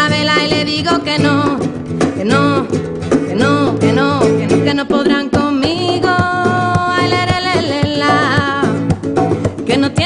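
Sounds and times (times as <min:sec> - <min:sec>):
bongos beating: 0:00.0 - 0:10.0
strummed nylon-string guitar: 0:00.0 - 0:10.0
woman singing: 0:00.0 - 0:10.0.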